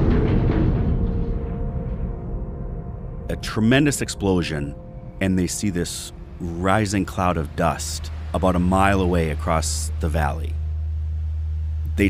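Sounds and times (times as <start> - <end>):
held low musical tones: 0.0 - 12.0.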